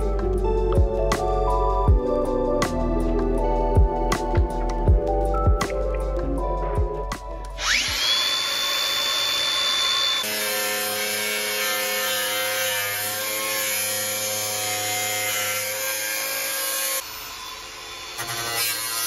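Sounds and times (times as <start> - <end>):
angle grinder cutting steel: 7.6 - 19.0.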